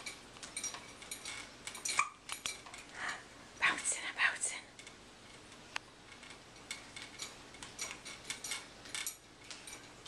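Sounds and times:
plastic toy rings clinking: 0:06.1 - 0:10.0.

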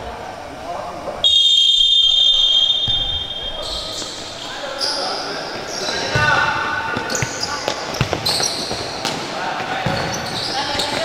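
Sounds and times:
referee's whistle long blast: 0:01.2 - 0:03.6
shoes squeaking on court: 0:02.3 - 0:11.0.

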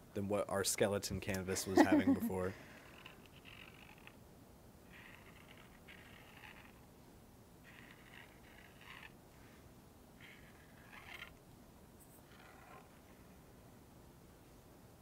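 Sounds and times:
pen tip scratching on canvas: 0:04.9 - 0:06.8, 0:07.7 - 0:09.2, 0:10.2 - 0:11.4.

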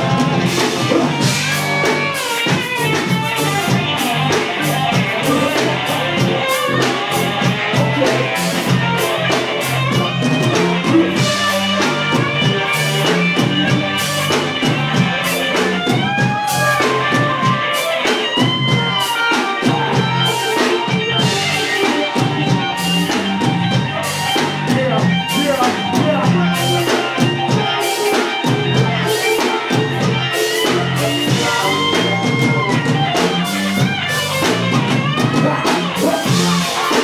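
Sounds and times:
drum kit with cymbal strokes: 0:00.0 - 0:37.0
electric guitar: 0:00.0 - 0:37.0
keyboard: 0:00.0 - 0:37.0.

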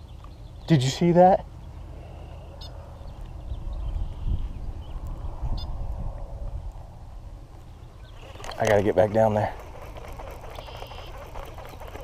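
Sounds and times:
wind buffeting microphone: 0:02.5 - 0:12.0
fishing reel whirring: 0:08.2 - 0:12.0.

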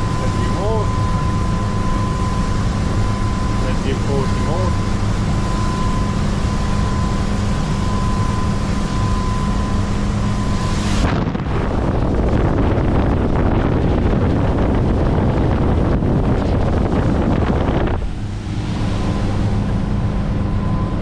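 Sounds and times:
steady high tone: 0:00.0 - 0:11.1, 0:18.3 - 0:21.0
boat diesel engines droning: 0:00.0 - 0:21.0
rushing wake water: 0:00.0 - 0:21.0
wind buffeting microphone: 0:00.0 - 0:21.0.

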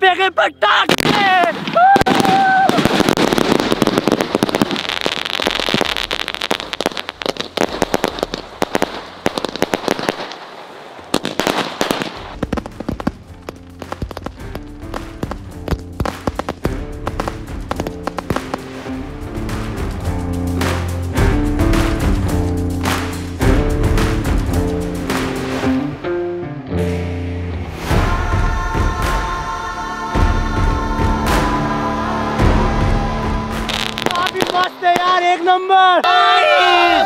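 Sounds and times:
fireworks bangs and crackling: 0:00.9 - 0:25.7, 0:32.4 - 0:35.4
background music with bass: 0:12.3 - 0:34.5.

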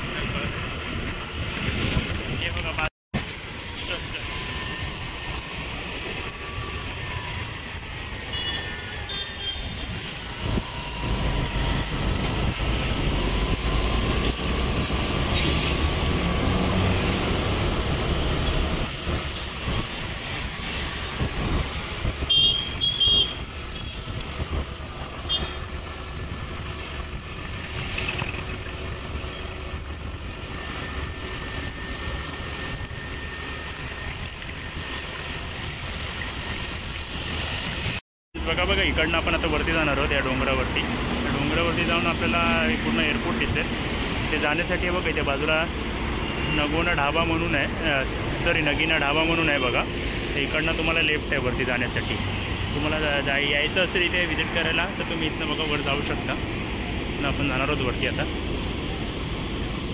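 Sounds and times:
highway traffic: 0:00.0 - 0:59.9
truck engine and tyres rumbling: 0:00.0 - 0:59.9.

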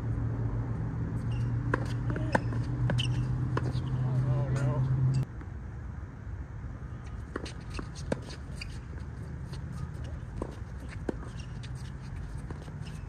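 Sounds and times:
tennis ball bouncing: 0:01.2 - 0:05.2, 0:07.3 - 0:13.0.

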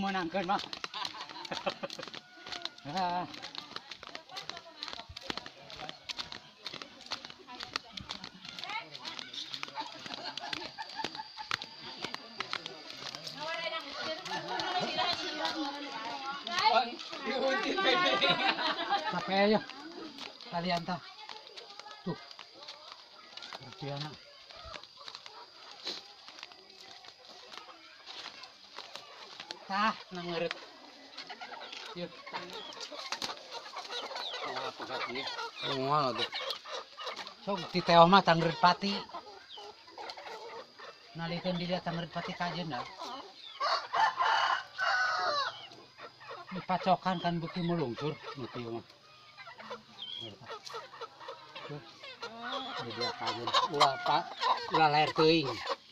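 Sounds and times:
people and children talking: 0:00.0 - 0:55.9
rooster crowing: 0:01.8 - 0:03.5, 0:13.8 - 0:18.1, 0:43.5 - 0:45.7.

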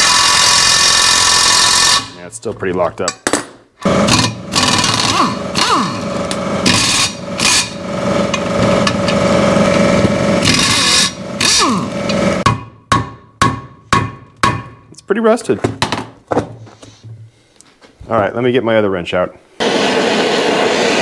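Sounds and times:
impact wrench hammering: 0:03.1 - 0:14.9.

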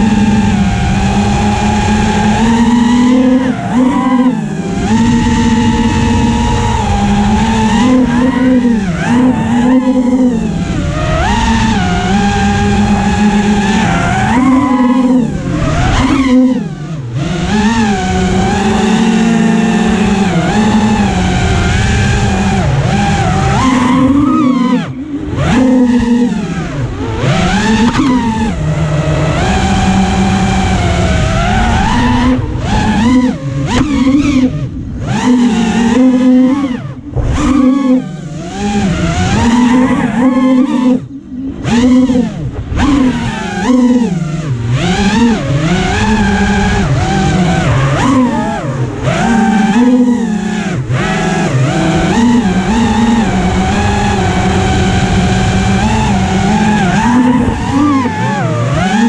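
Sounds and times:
quadcopter motors whining: 0:00.0 - 0:59.0.

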